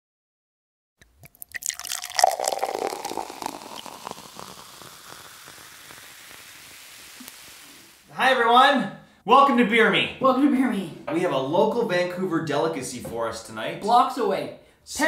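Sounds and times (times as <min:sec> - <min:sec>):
beer pouring into a glass: 0:01.0 - 0:08.1
carbonation fizz: 0:01.0 - 0:08.1.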